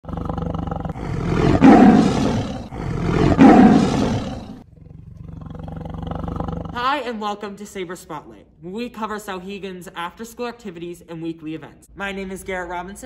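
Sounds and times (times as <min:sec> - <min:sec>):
big cat roaring: 0:00.0 - 0:06.8.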